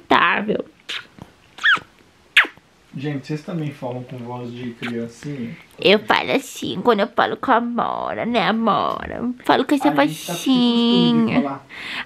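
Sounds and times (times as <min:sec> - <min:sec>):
dog whining: 0:00.9 - 0:02.6.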